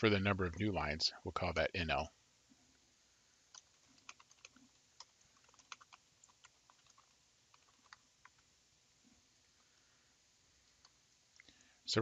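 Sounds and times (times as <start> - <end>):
typing on computer keyboard: 3.5 - 8.4.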